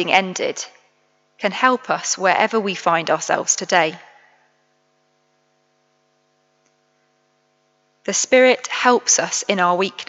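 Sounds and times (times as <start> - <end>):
faint electrical hum: 0.0 - 10.0
voice echoing in church: 1.4 - 4.8.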